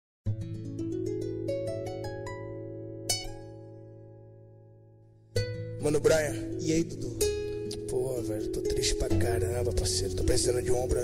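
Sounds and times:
plucked harp-like chord ringing: 5.4 - 11.0.

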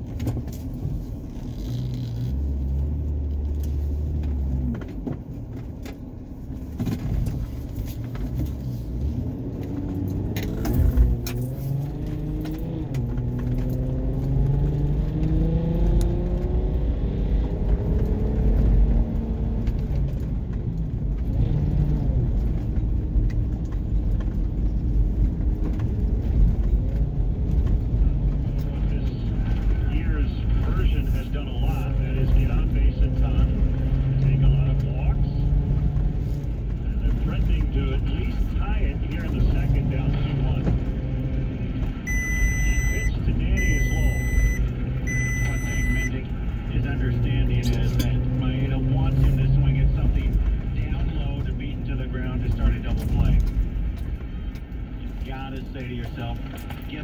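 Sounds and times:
road and engine rumble: 0.0 - 57.0
radio sports broadcast talking: 28.4 - 35.6, 36.8 - 41.2, 42.0 - 53.8, 55.0 - 57.0
electronic beeps: 42.1 - 46.3.

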